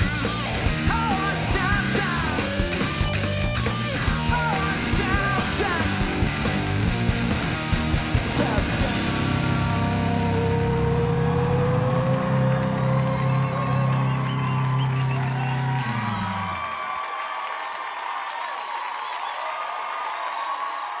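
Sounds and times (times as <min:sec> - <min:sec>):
rock band final chord: 0:00.0 - 0:16.6
audience applauding and cheering: 0:10.3 - 0:21.0.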